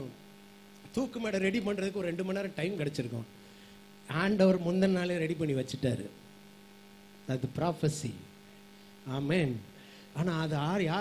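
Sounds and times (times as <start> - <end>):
electrical hum: 0.0 - 11.0
man speaking into microphone: 0.8 - 3.3, 4.1 - 6.2, 7.3 - 8.3, 9.0 - 11.0.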